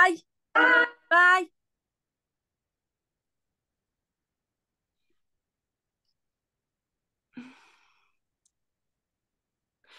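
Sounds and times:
woman sighing: 7.3s - 8.1s.

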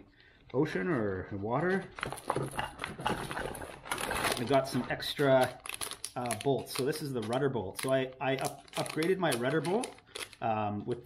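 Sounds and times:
plastic bag crinkling: 1.9s - 10.5s.

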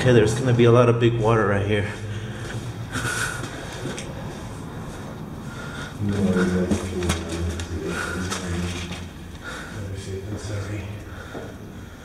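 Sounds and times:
steady low hum: 0.0s - 12.0s
footsteps echoing on concrete: 2.4s - 9.5s, 11.2s - 11.7s.

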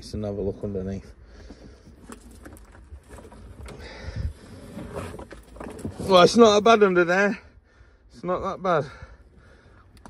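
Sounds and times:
light clicks and rustles: 1.3s - 4.0s.

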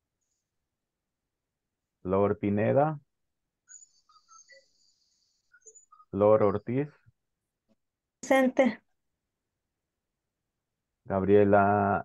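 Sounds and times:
faint high-pitched chirps: 3.5s - 7.1s.

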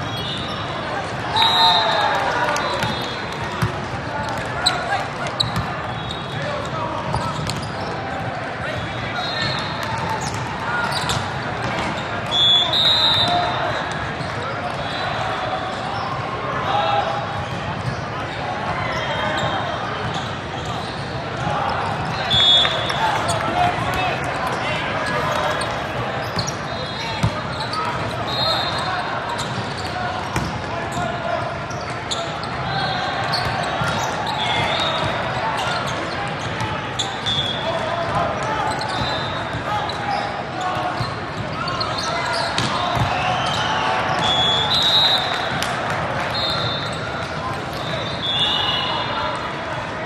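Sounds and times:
sneaker squeaks on court floor: 0.0s - 0.8s, 2.6s - 16.3s, 17.4s - 45.6s, 46.2s - 49.2s
many overlapping voices: 0.0s - 50.0s
volleyball hits: 42.5s - 43.3s.

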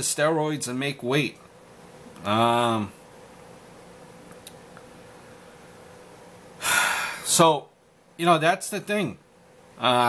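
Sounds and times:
low room hum: 0.0s - 10.0s
man's sharp intake of breath: 6.6s - 7.3s.

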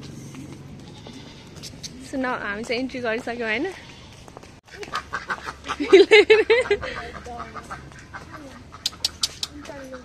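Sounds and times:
ducks quacking: 4.7s - 10.0s.

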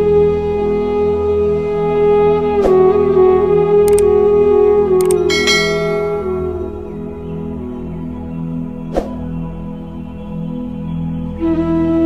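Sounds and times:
calm ambient music drone: 0.0s - 12.0s
click: 3.9s - 4.1s, 5.0s - 6.2s
bright bell chime: 5.0s - 6.8s.

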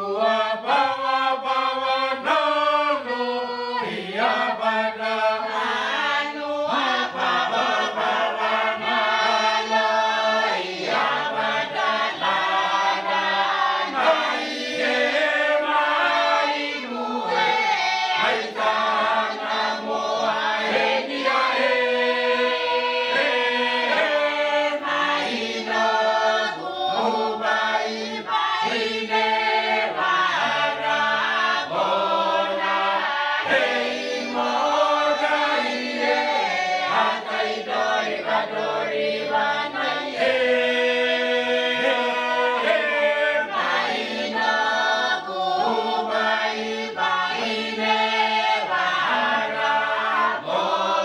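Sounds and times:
mixed choir singing a hymn: 0.0s - 51.0s.

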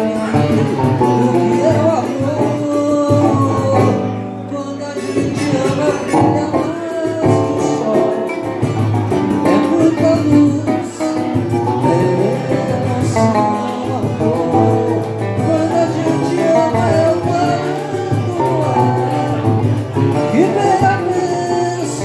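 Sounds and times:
man singing: 0.0s - 22.0s
small plucked string instrument: 0.0s - 22.0s
strummed acoustic guitar: 0.0s - 22.0s.

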